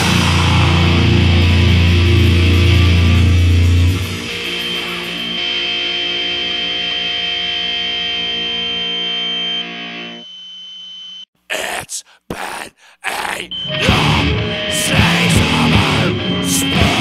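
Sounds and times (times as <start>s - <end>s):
heavy distorted metal riff: 0.0s - 9.0s, 13.2s - 17.0s
ringing distorted guitar chord: 0.0s - 10.2s, 13.6s - 17.0s
high feedback whine: 0.6s - 11.2s.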